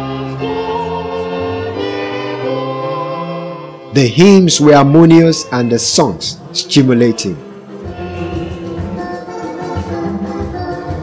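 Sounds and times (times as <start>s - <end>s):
choir singing a hymn: 0.0s - 3.4s, 4.7s - 11.0s.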